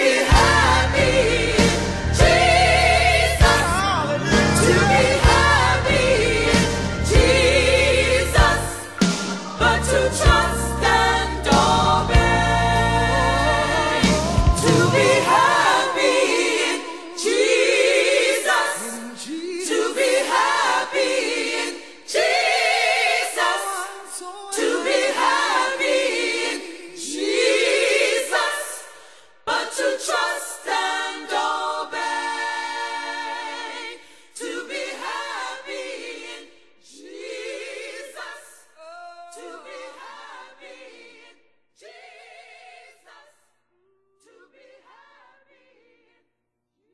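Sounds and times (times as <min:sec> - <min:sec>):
gospel choir singing: 0:00.0 - 0:46.2.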